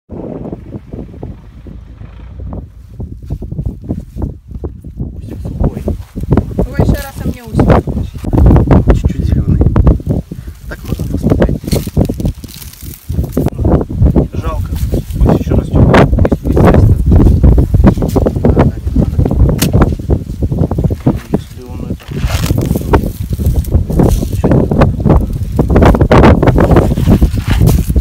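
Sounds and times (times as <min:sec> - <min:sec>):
wind rumbling on microphone: 0:00.1 - 0:28.0
men talking: 0:05.2 - 0:06.0, 0:08.0 - 0:11.9, 0:13.5 - 0:16.8, 0:18.2 - 0:19.6, 0:21.0 - 0:23.2.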